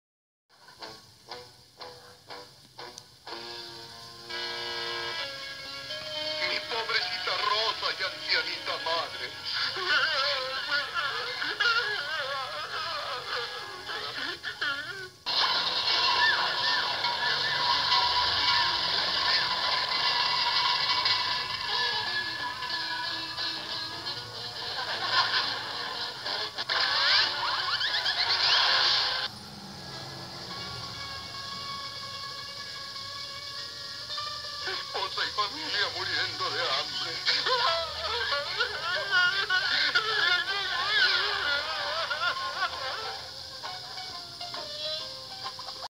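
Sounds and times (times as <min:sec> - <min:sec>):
cartoon music: 0:03.3 - 0:43.3
cartoon vocal noises: 0:09.5 - 0:19.9, 0:26.3 - 0:29.3, 0:34.8 - 0:42.8
cartoon sound effects: 0:14.2 - 0:23.4, 0:26.7 - 0:29.4.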